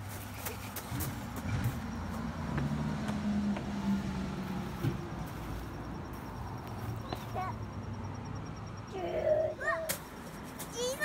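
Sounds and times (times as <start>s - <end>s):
motor vehicle engine hum: 0.0s - 11.0s.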